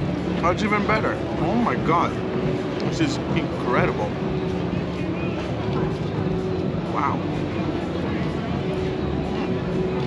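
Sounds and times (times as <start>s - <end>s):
murmur of distant voices: 0.0s - 10.0s
steady low hum: 0.0s - 10.0s.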